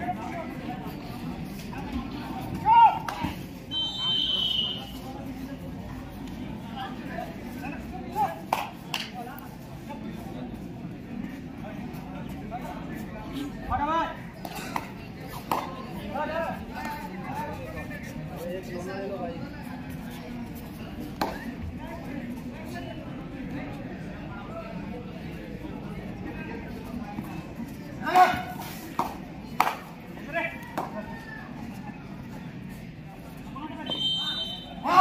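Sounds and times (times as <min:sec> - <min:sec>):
murmur of spectators: 0:00.0 - 0:35.0
high whistle blast: 0:03.7 - 0:04.9
sharp claps or slaps: 0:08.5 - 0:09.1, 0:29.0 - 0:29.9.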